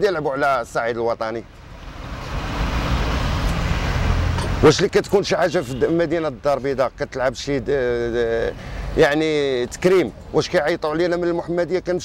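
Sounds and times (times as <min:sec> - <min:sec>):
vehicle rumble with road hiss: 0:00.0 - 0:12.0.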